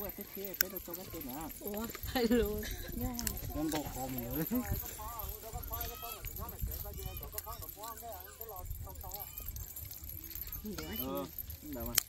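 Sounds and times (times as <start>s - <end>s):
people chatting and exclaiming: 0.0s - 12.0s.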